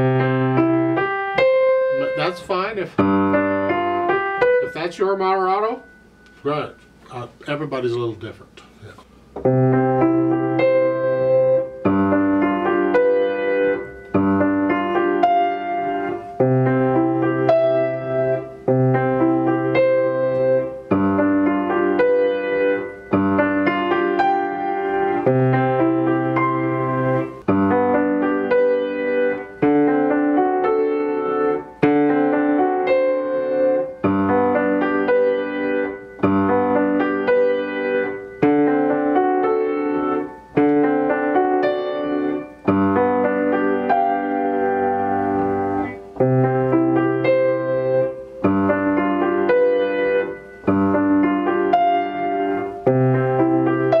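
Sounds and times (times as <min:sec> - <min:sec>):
grand piano chords: 0:00.0 - 0:54.0.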